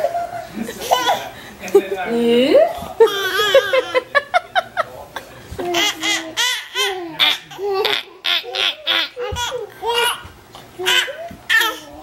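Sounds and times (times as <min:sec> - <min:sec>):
toddler laughing: 0:00.0 - 0:01.3, 0:03.0 - 0:04.1, 0:05.6 - 0:12.0.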